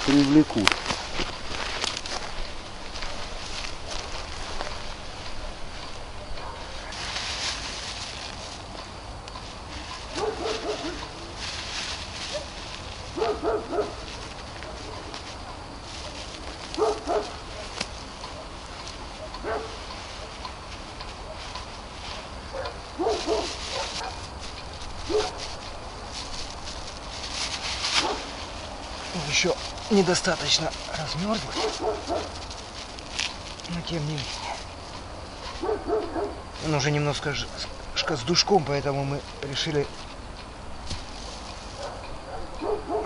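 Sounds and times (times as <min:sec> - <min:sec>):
crickets chirring: 0:00.0 - 0:43.0
distant dogs barking: 0:02.9 - 0:07.0, 0:09.8 - 0:11.5, 0:12.2 - 0:26.8, 0:27.4 - 0:32.7, 0:34.0 - 0:38.6, 0:41.6 - 0:43.0.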